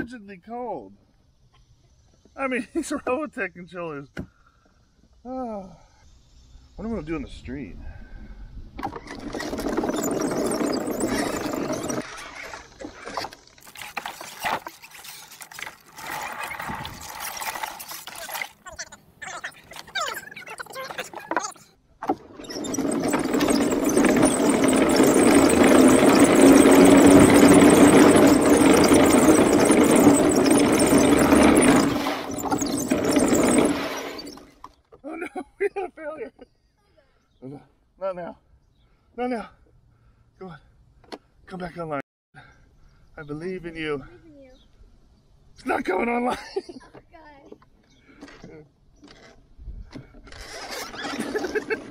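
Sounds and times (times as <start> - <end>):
wooden tracks clattering over pavement: 9.1 - 12.0, 20.7 - 34.7
electric motors whirring: 9.2 - 18.6, 22.1 - 34.6.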